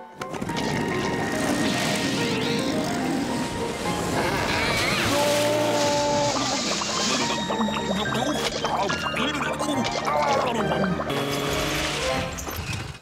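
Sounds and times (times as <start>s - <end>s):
water spraying: 1.7s - 8.0s
outboard motor running: 11.1s - 11.9s.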